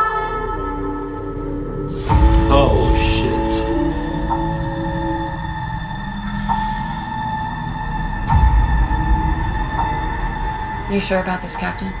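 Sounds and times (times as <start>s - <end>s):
low rumbling: 0.0s - 12.0s
high drone: 0.6s - 12.0s.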